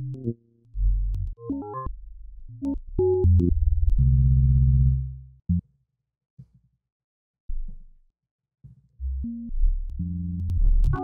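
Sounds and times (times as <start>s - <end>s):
synthesizer bass notes: 9.1s - 11.0s.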